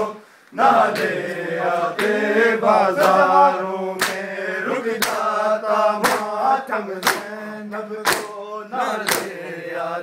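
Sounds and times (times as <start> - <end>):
men chanting: 0.0 - 10.0.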